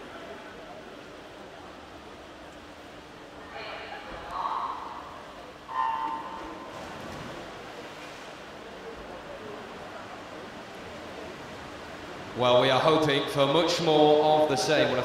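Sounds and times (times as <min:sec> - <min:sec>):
pool hall noise: 0:00.0 - 0:15.0
swimmers entering water: 0:05.7 - 0:09.0.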